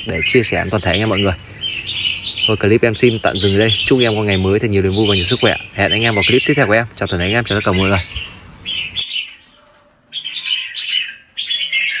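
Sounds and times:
bird chirpy song: 0.0s - 12.0s.

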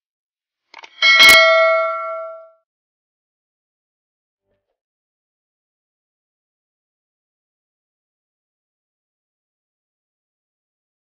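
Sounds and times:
bright bell ding: 0.9s - 2.5s.

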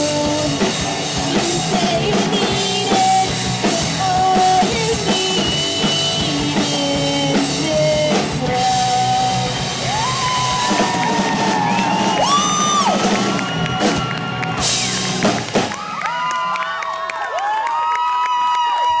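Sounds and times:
live rock band playing: 0.0s - 16.2s
audience whooping and cheering: 9.5s - 19.0s.

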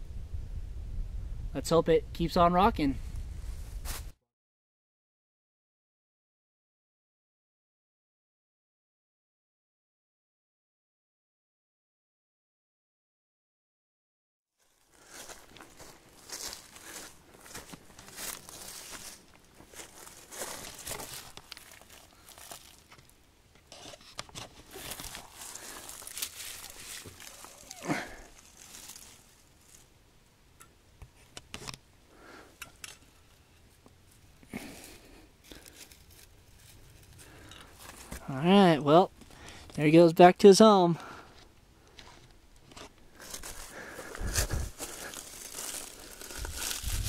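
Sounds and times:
dry leaves rustling and crunching: 14.6s - 22.9s, 24.5s - 29.9s, 35.4s - 38.1s, 43.2s - 47.0s
rock scraping: 17.5s - 29.9s.

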